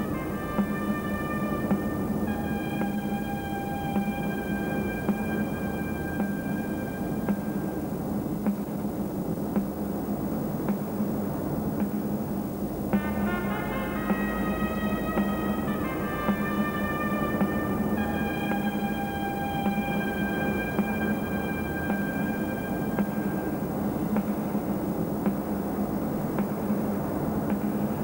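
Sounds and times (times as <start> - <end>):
sustained music chords: 0.0 - 8.5, 12.9 - 24.8
high held notes: 0.0 - 8.6, 12.9 - 25.0
low drone: 0.0 - 8.9, 12.7 - 28.0.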